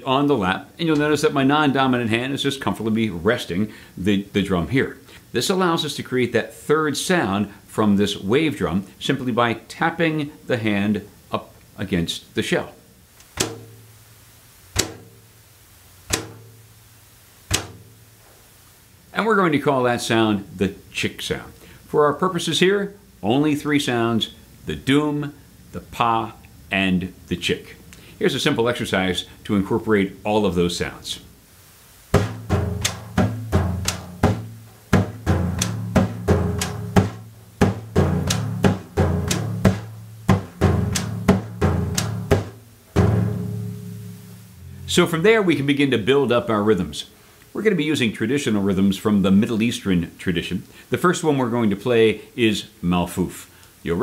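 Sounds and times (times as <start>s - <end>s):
hand tapping ocean drum shell: 13.4s - 13.9s, 14.8s - 15.2s, 16.1s - 16.6s, 17.5s - 18.0s, 32.2s - 43.9s.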